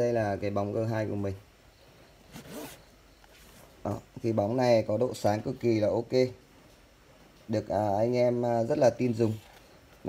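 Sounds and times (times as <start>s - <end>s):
cardboard box sliding: 2.3s - 3.6s.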